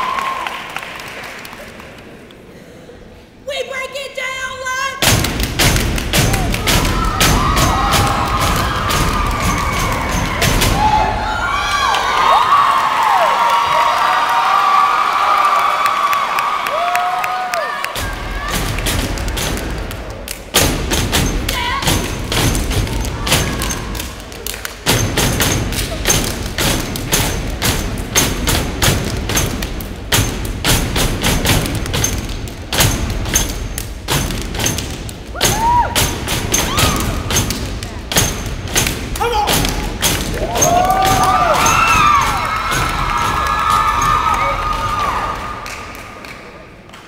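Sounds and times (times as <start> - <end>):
audience whooping and cheering: 0.0 - 1.8, 6.2 - 18.9, 35.3 - 37.3, 40.3 - 46.4
stomping and clapping on stage: 0.0 - 2.4, 5.0 - 47.0.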